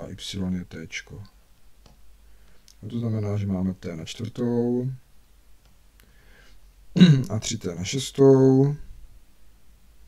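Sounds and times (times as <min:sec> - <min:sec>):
man speaking: 0:00.0 - 0:01.3, 0:02.8 - 0:05.0, 0:07.0 - 0:08.9.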